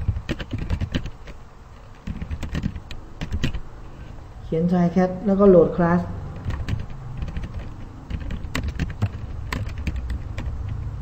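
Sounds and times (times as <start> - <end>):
keyboard typing: 0.0 - 3.6, 6.3 - 11.0.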